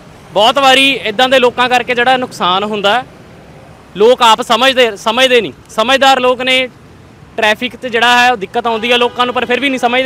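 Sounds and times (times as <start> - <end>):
faint street noise: 0.0 - 10.0
man narrating: 0.3 - 3.1, 3.9 - 10.0.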